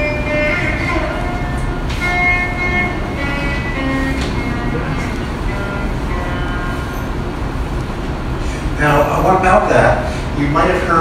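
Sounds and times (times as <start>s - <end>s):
slow melody over loudspeakers: 0.0s - 7.8s
steady low rumble: 0.0s - 11.0s.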